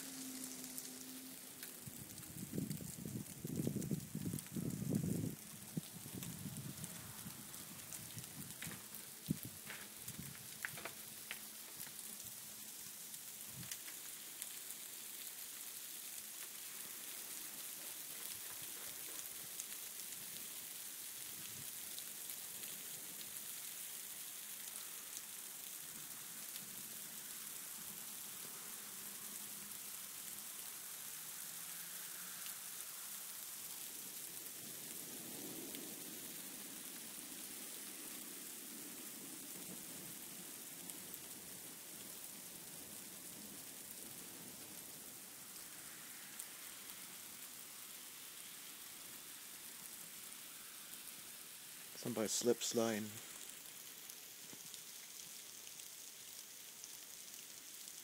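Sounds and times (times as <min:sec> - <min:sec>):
freezing rain and hail falling: 0:00.0 - 0:58.0.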